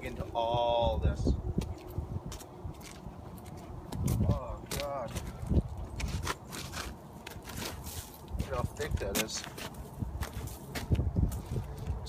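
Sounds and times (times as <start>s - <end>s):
wind rumble on microphone: 0.0s - 12.0s
boots stepping on mulch and pavement: 1.5s - 12.0s.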